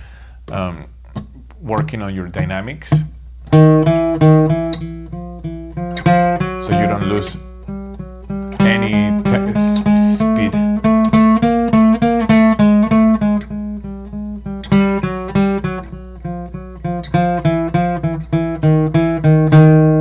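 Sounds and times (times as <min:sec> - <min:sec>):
acoustic guitar picked notes: 0:00.5 - 0:20.0.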